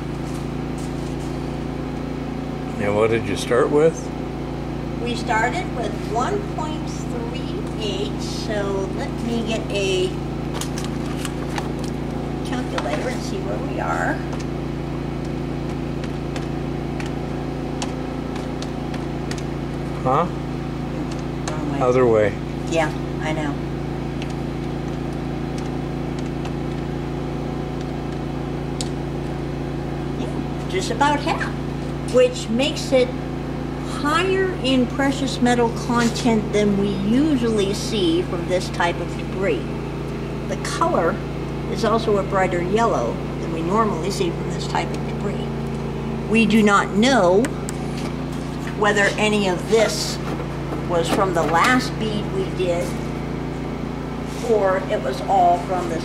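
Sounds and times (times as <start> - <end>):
machine hum: 0.0 - 56.0
calculator keys clicking: 24.2 - 26.9.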